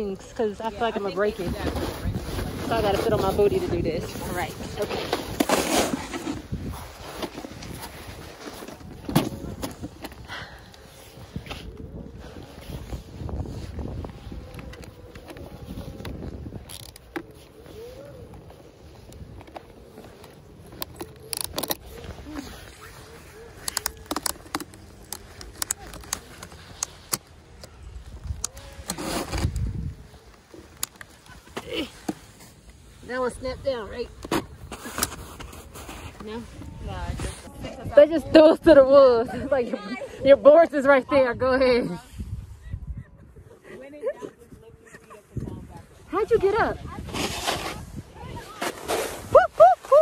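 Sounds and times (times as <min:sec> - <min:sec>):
rustling of snow clothing: 0:00.0 - 0:42.7, 0:43.6 - 0:50.0
microphone handling noise: 0:11.2 - 0:30.9
ratchet clicks of binding straps: 0:20.8 - 0:21.8, 0:23.6 - 0:27.7.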